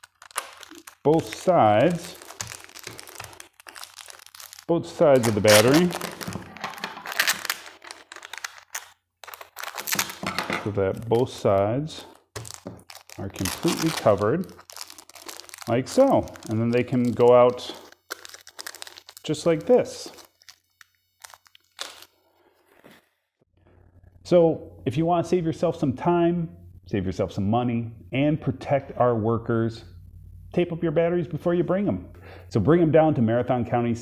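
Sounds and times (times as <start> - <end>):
plastic tape crinkling: 0.0 - 22.1.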